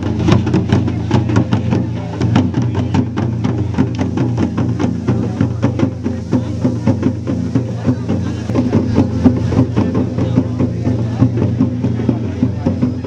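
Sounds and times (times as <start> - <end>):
folk drums fast rhythm: 0.0 - 13.0.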